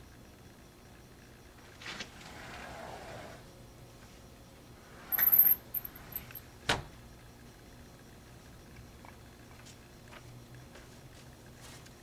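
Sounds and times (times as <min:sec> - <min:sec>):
jingling rattle: 0:05.1 - 0:06.4.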